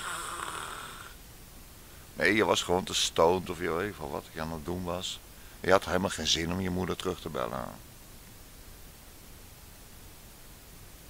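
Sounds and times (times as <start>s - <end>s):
man breathing: 0.0s - 1.2s, 5.2s - 5.6s.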